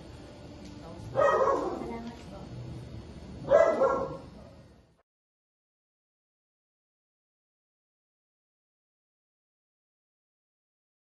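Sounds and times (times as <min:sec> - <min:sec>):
low background murmur: 0:00.0 - 0:04.9.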